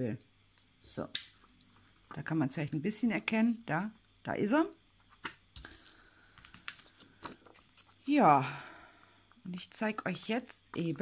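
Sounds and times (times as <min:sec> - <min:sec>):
plastic sheets clicking and tapping: 0:05.2 - 0:07.6.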